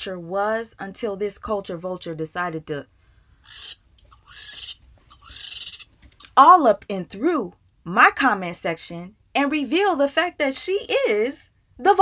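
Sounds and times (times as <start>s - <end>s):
woman making hissing screeches: 3.4s - 5.8s.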